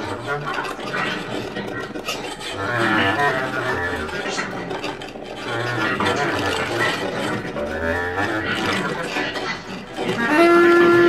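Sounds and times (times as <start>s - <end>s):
laptop electronics: 0.0s - 11.0s
bass clarinet low notes: 10.1s - 11.0s.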